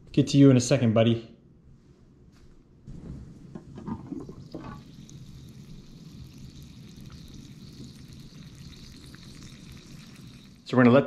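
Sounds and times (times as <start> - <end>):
liquid bubbling at a simmer: 3.6 - 10.8.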